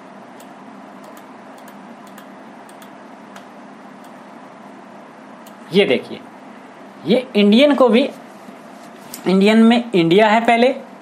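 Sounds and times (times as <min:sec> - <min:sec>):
room and microphone hiss: 0:00.0 - 0:11.0.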